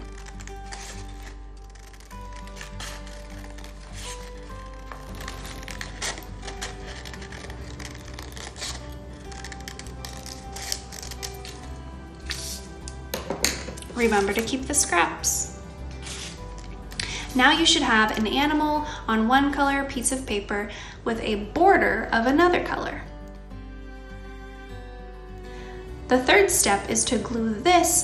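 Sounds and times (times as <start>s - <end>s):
scissors cutting paper: 0.0s - 13.0s, 13.8s - 14.9s, 15.9s - 17.4s
background music with held tones: 0.0s - 28.0s.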